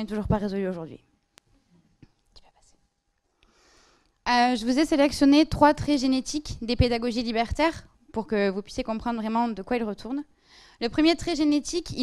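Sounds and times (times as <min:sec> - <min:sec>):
soft intake of breath: 0:03.4 - 0:04.2, 0:10.4 - 0:10.8.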